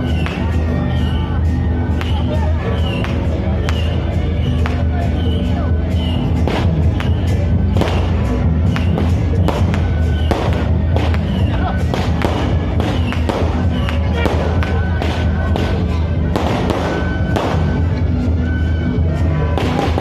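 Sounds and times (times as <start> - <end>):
firecrackers cracking: 7.8 - 17.9.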